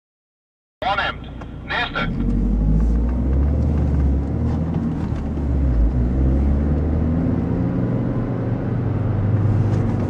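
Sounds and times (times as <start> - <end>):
car road and engine rumble: 0.8 - 10.0.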